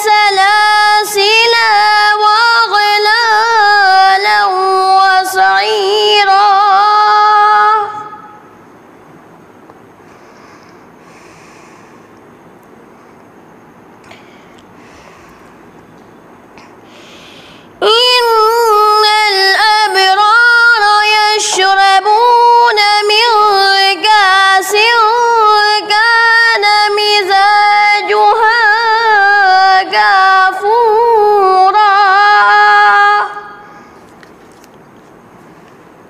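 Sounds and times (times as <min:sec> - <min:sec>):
boy chanting recitation: 0:00.0 - 0:08.5, 0:17.8 - 0:34.0
steady low hiss: 0:00.0 - 0:36.0.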